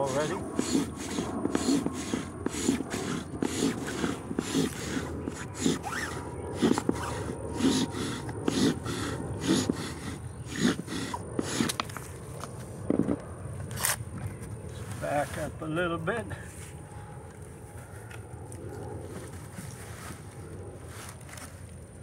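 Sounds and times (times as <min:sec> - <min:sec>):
wooden spindle scraping: 0:00.0 - 0:12.1.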